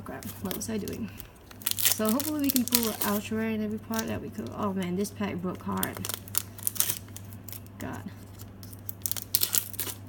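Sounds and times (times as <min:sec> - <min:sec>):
foil wrapper tearing and crinkling: 0:00.0 - 0:10.0
sharp crackles: 0:00.4 - 0:03.3, 0:05.6 - 0:07.7, 0:08.6 - 0:10.0.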